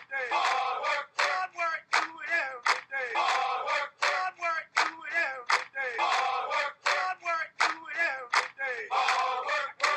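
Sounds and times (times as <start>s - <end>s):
group of voices shouting: 7.9s - 9.9s.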